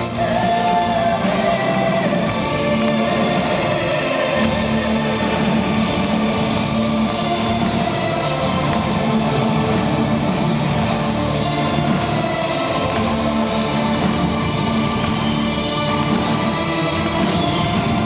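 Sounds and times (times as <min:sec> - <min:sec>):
drum kit: 0:00.0 - 0:18.0
keyboards: 0:00.0 - 0:18.0.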